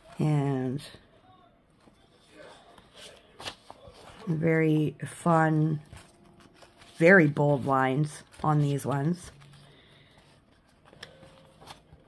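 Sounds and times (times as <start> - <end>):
paper pages rustling: 1.8 - 4.6, 5.6 - 12.0
paper flap: 2.8 - 4.3.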